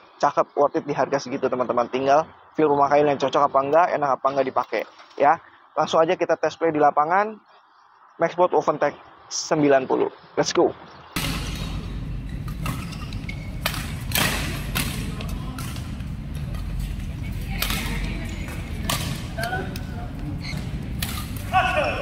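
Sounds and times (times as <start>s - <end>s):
steady low rumble: 11.2s - 21.5s
rackets striking shuttlecock: 11.2s - 22.0s.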